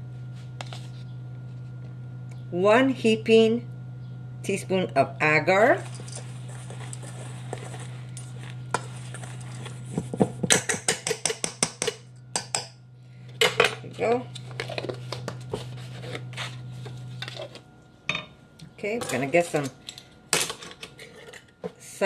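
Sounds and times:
low hum: 0:00.0 - 0:10.8.

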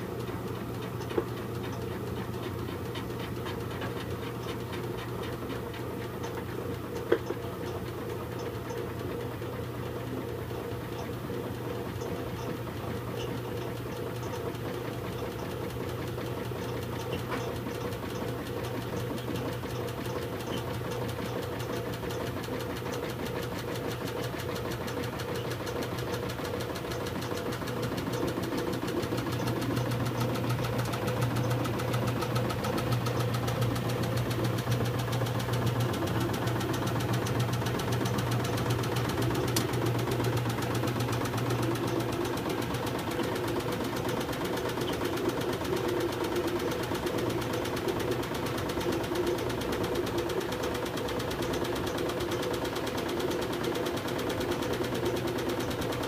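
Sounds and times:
washing machine running: 0:00.0 - 0:56.0.

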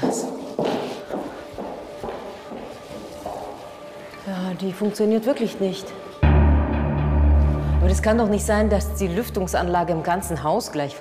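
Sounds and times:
footsteps on hard floor: 0:00.0 - 0:05.0
soft background music: 0:00.0 - 0:11.0.

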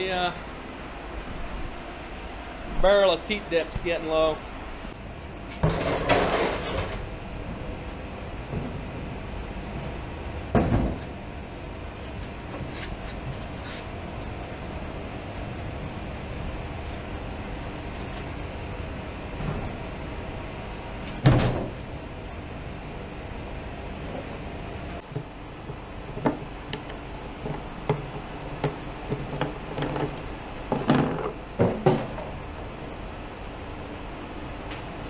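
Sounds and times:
steady machinery hum: 0:00.0 - 0:35.0.

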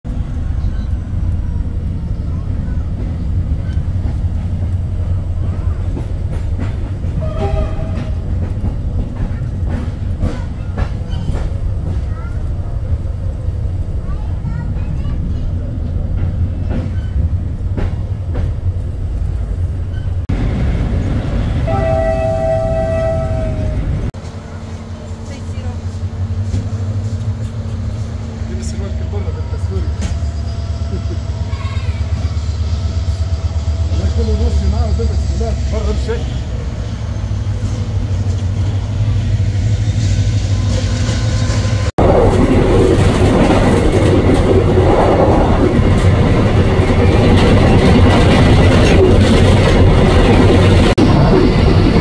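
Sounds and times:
train rumbling inside coach: 0:00.0 - 0:52.0
train horn: 0:07.2 - 0:08.3, 0:21.7 - 0:24.0.

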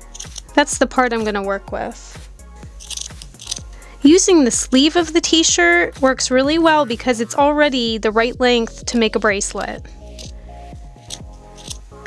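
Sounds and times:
scissors snipping fabric: 0:00.0 - 0:00.5, 0:02.8 - 0:03.7, 0:11.0 - 0:11.8
soft background music: 0:00.0 - 0:12.0.

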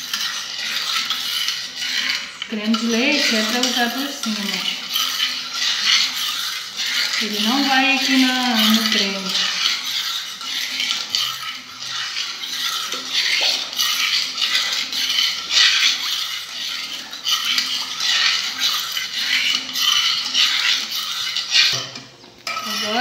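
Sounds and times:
metal spoon scraping a pot: 0:00.0 - 0:23.0.

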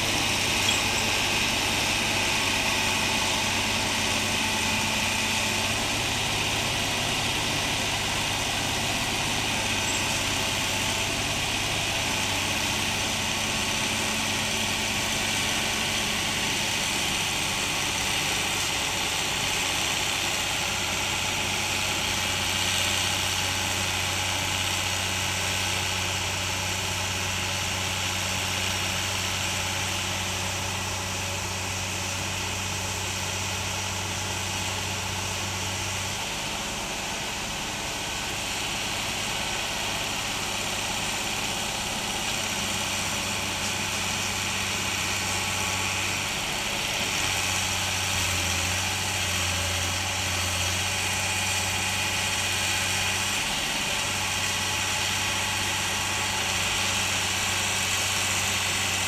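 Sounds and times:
excavator diesel engine running: 0:00.0 - 0:59.0.

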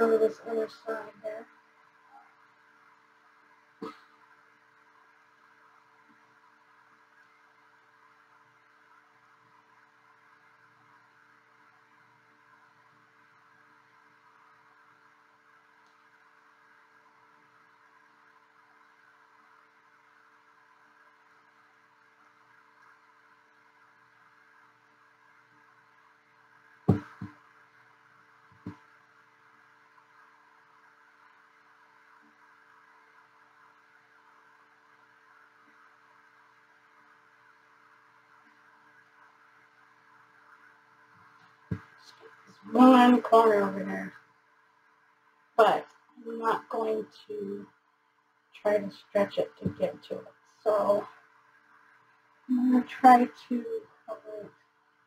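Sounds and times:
faint room hum: 0:00.0 - 0:55.0
canvas knocking on tray: 0:26.9 - 0:27.4.

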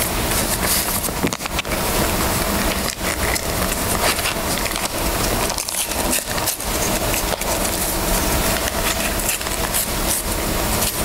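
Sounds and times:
paper cards rustling: 0:00.1 - 0:11.0.

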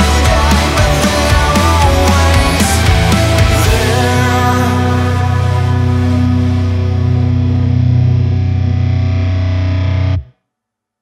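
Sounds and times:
distorted electric guitar chord: 0:00.0 - 0:10.3.

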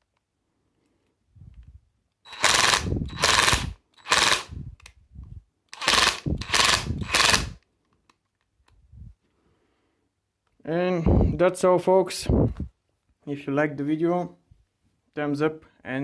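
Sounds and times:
impact wrench hammering: 0:02.3 - 0:04.5.

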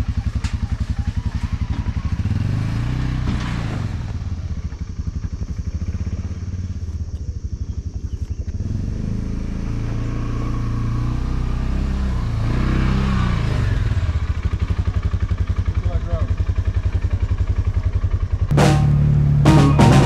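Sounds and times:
utility vehicle engine idling: 0:00.0 - 0:11.3, 0:13.7 - 0:20.0
drum-led music: 0:18.5 - 0:20.0.

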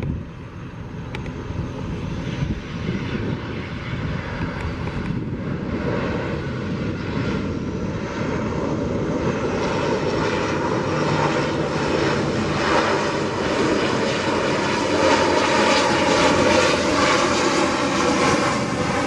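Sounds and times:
turboprop airliner engines running: 0:00.0 - 0:19.0.

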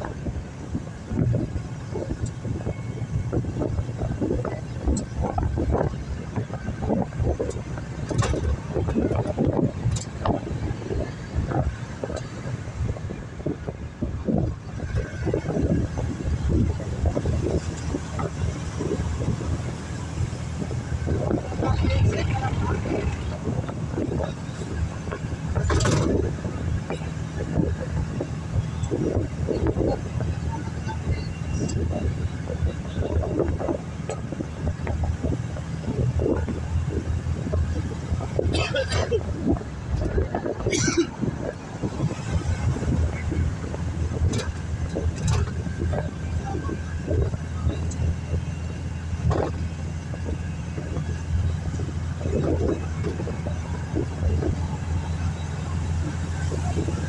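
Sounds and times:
van engine and road noise: 0:00.0 - 0:57.0.

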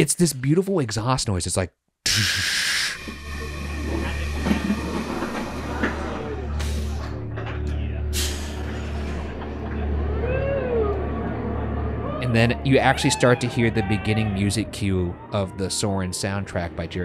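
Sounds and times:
hissing bursts of air: 0:02.1 - 0:03.4, 0:08.2 - 0:09.0.

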